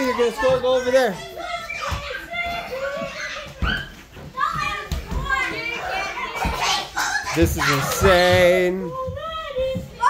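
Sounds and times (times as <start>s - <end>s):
children shouting while playing: 0.0s - 10.0s.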